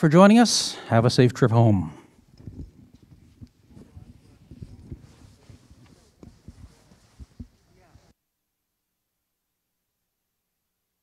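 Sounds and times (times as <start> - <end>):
low knocks and shuffling: 2.4 - 8.1.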